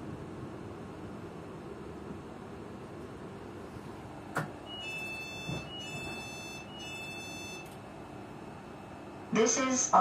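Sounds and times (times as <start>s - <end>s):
two-note electronic door alarm beep: 4.6s - 7.8s.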